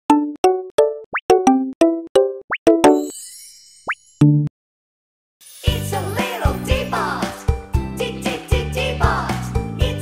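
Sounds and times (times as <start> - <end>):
shimmering sparkle chime: 3.0 - 3.9, 5.4 - 6.6.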